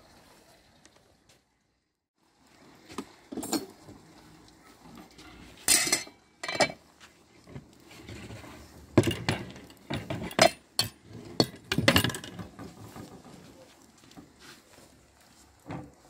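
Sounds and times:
metal cookware clanking: 0:03.3 - 0:03.8, 0:05.6 - 0:06.8, 0:08.0 - 0:12.6.

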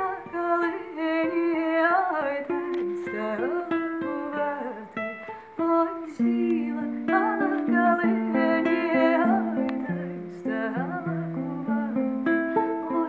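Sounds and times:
plucked strings: 0:00.0 - 0:13.0
woman singing: 0:00.0 - 0:13.0.

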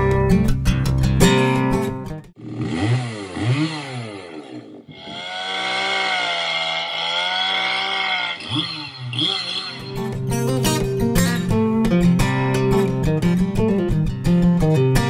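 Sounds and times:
chainsaw revving and cutting wood: 0:02.4 - 0:11.2.

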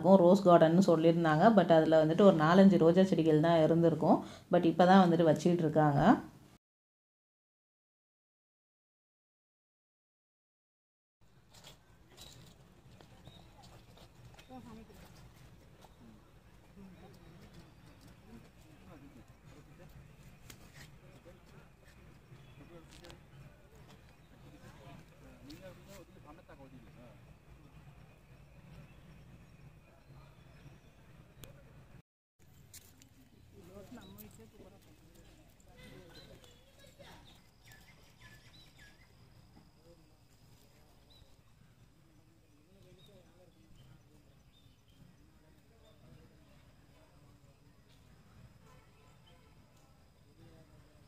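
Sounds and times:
distant indistinct voices: 0:13.0 - 0:32.0, 0:33.1 - 0:51.0.

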